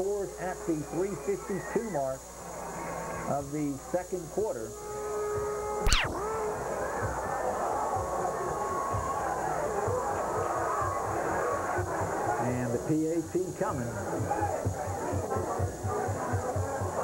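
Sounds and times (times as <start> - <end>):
sharp crack with falling sweep: 5.8 - 6.2.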